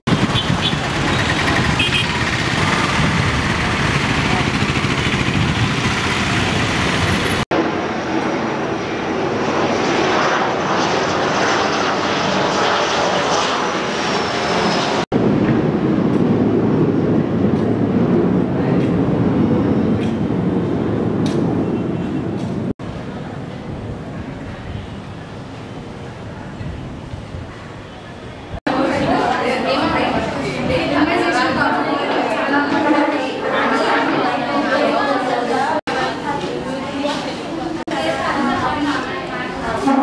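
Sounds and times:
vehicle-like rumble: 0:00.1 - 0:07.4.

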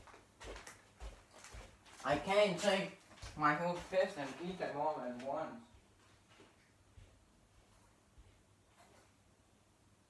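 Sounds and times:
faint footsteps on floor: 0:00.0 - 0:09.2.

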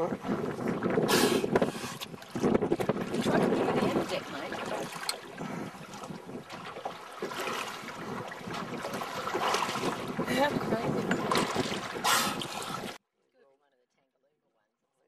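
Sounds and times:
water slapping boat hull: 0:00.0 - 0:13.0
wind on microphone: 0:00.0 - 0:13.0.

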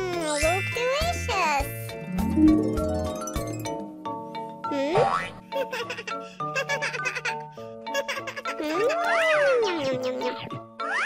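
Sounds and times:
children's background music: 0:00.0 - 0:11.0.

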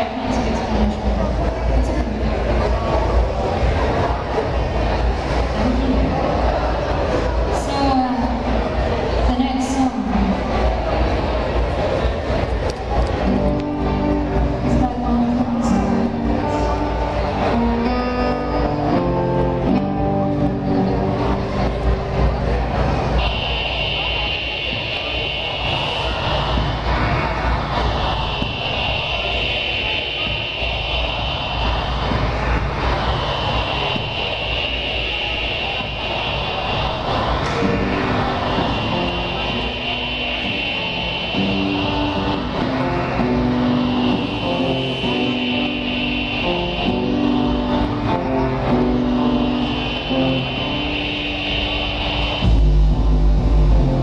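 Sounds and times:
high held tone with whoosh: 0:00.0 - 0:54.0
live electronic rock music: 0:13.1 - 0:54.0.

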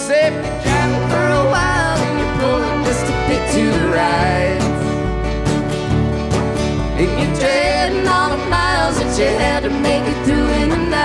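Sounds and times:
country band playing live: 0:00.0 - 0:11.0.

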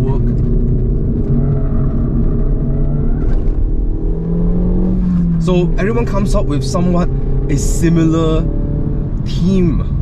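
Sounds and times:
car engine running: 0:00.0 - 0:10.0
low road rumble: 0:00.0 - 0:10.0.

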